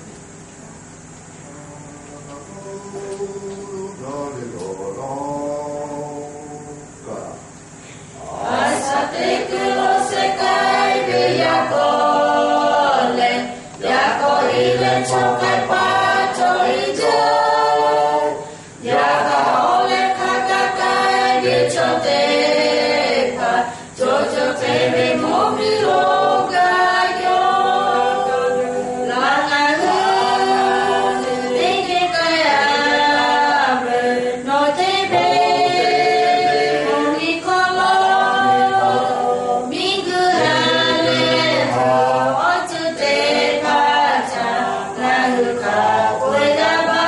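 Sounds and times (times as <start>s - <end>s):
small group singing a hymn: 1.4s - 47.0s.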